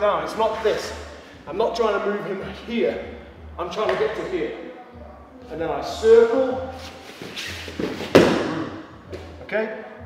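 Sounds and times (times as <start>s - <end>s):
body thump on mat: 7.8s - 8.6s.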